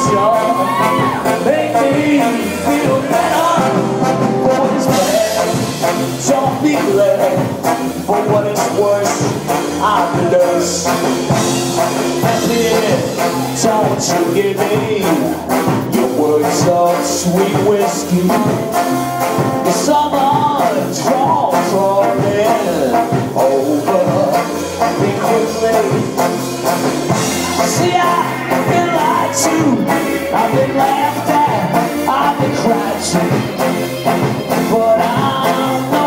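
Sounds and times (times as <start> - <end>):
bass: 0.0 - 36.0
drums: 0.0 - 36.0
live ska band playing: 0.0 - 36.0
saxophone: 0.0 - 36.0
trombone: 0.0 - 36.0.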